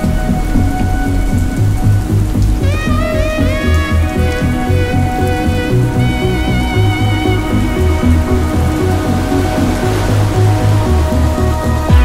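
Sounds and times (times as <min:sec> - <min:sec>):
dark ambient synthesizer music: 0:00.0 - 0:12.0
rain hiss: 0:00.0 - 0:12.0.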